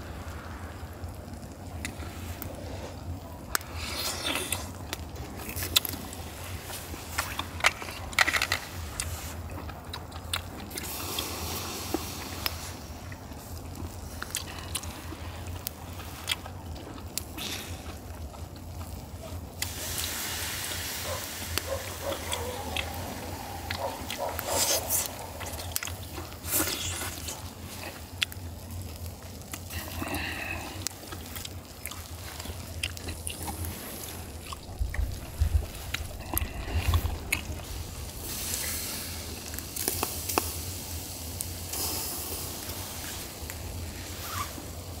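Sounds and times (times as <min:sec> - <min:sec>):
man chewing and slurping: 0:21.8 - 0:28.3, 0:29.5 - 0:40.3.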